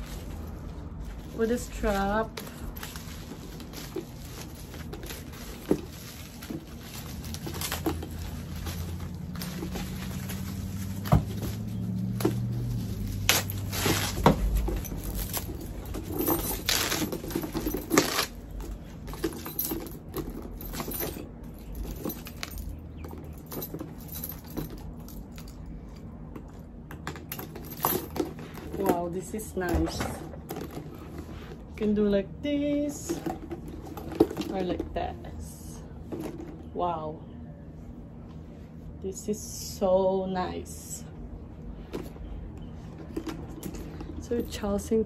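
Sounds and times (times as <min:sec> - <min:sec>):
wrapping rustling and crinkling: 0:00.0 - 0:25.3
metal chain strap clinking: 0:00.0 - 0:31.3.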